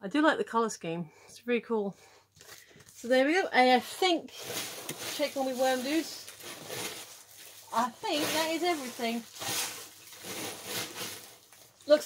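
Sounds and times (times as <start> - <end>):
paper and packaging rustling: 2.4 - 12.0.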